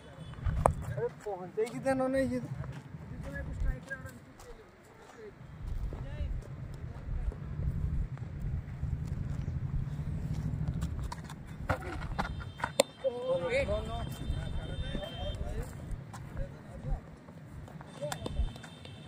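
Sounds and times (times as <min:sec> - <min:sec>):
wind rumble on microphone: 0:00.3 - 0:01.0, 0:05.5 - 0:12.4
cricket bat striking ball: 0:11.6 - 0:13.0.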